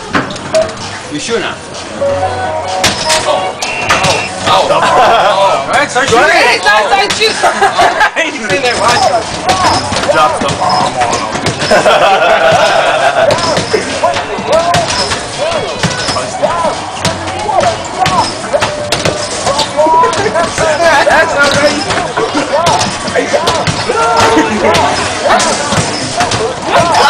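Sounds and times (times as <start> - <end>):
basketballs thudding against backboards: 8.4 - 27.0.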